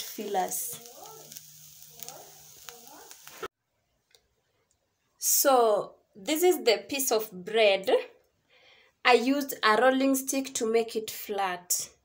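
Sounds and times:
meat sizzling in a pan: 0.0 - 3.5.

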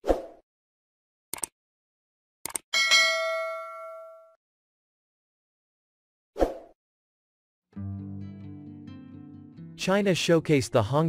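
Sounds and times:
notification bell ding: 2.8 - 4.4.

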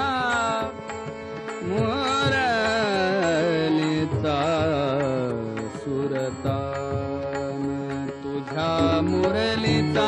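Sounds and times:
tabla strokes: 0.0 - 10.0.

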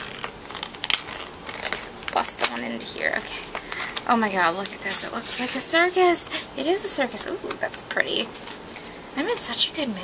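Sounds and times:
paper envelope tearing: 0.0 - 2.6.

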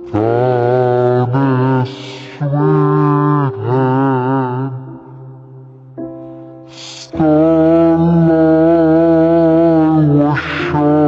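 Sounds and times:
man singing with vibrato: 0.0 - 5.5, 6.7 - 11.0.

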